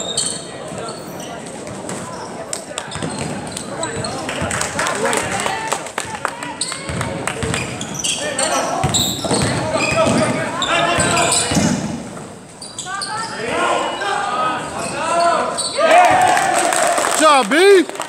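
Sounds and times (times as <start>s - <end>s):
sneaker squeaks: 0.0s - 4.5s, 6.6s - 15.8s.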